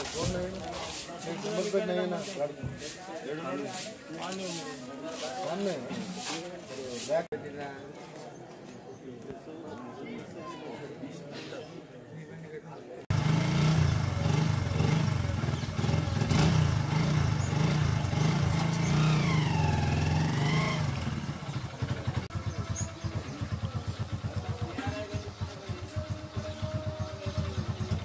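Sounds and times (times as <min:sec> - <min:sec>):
motorcycle engine revving and idling: 0:13.1 - 0:28.0.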